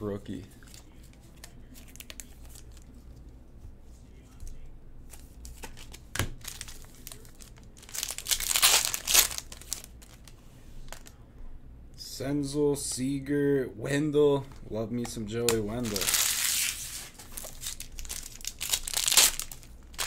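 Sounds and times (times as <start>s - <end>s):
foil wrapper tearing and crinkling: 5.5s - 10.3s, 15.5s - 20.0s.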